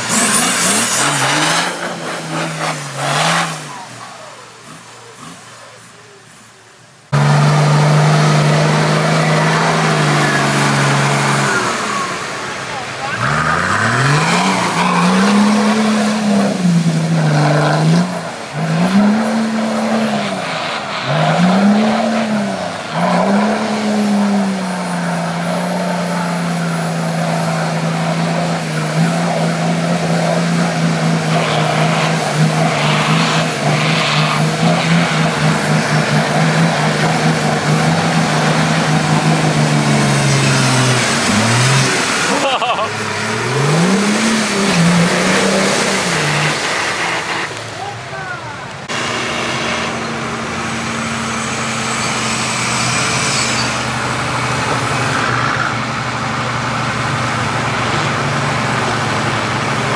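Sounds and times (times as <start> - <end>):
engine revving hard: 0.0 - 5.8, 7.1 - 59.9
tyres churning through mud: 0.0 - 59.9.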